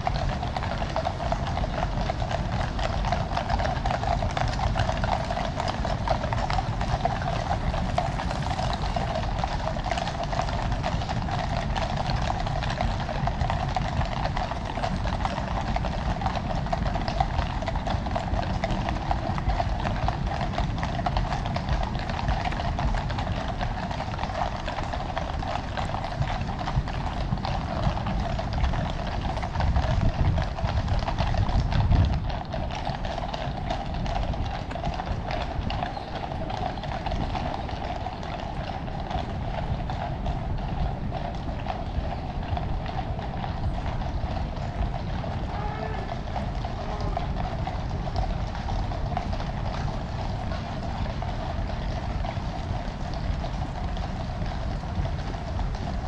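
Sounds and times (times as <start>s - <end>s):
horse hooves clip-clopping on road: 0.0s - 56.0s.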